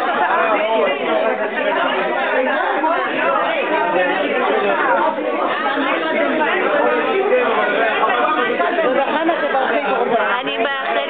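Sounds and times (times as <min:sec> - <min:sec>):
overlapping conversational chatter: 0:00.0 - 0:11.0.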